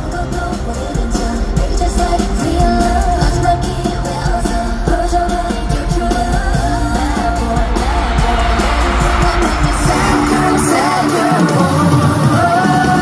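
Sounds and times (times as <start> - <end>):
woman singing over pop track: 0.0 - 13.0
heavy bass beat: 7.4 - 12.0.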